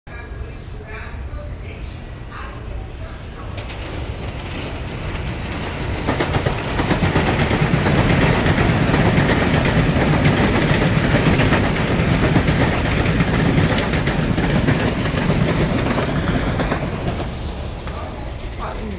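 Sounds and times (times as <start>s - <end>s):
train wheel and rail noise: 0.1s - 18.9s
wheels clattering over track: 3.6s - 18.9s.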